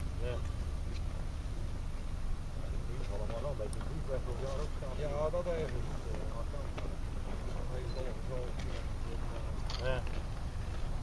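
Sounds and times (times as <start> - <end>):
faint people talking: 2.3 - 11.0.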